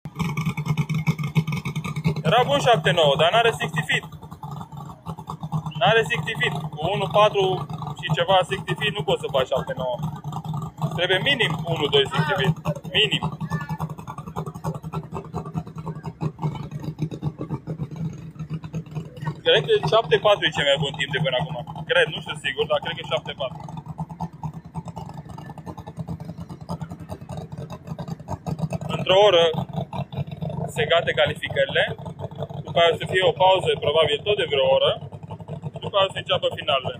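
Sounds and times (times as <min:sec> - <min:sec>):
race car engine rough idle: 0:00.0 - 0:36.9.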